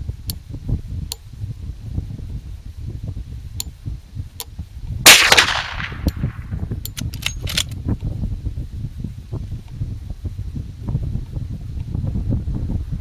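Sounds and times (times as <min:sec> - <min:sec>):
rifle shot: 0:05.0 - 0:07.7
metallic lever clicks: 0:06.8 - 0:07.8.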